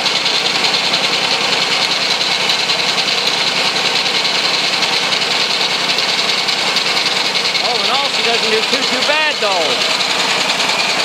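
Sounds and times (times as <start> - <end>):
small engine running: 0.0 - 11.0.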